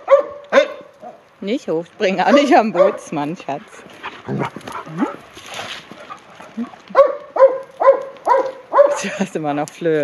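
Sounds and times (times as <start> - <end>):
dog barking: 0.0 - 1.2, 2.2 - 3.1, 6.9 - 9.0.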